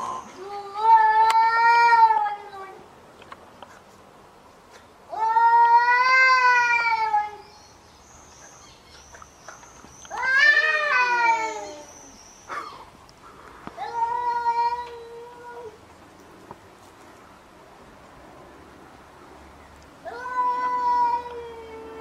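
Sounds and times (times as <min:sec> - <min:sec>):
cat yowling: 0:10.1 - 0:12.0.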